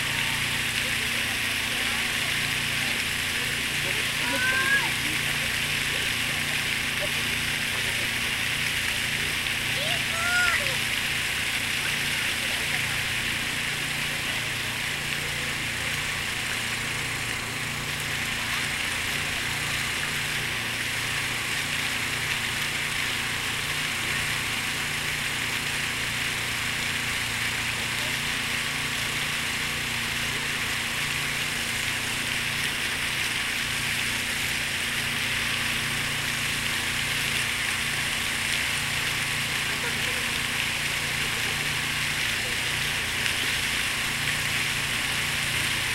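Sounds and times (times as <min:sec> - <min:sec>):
fountain water splashing: 0:00.0 - 0:45.9.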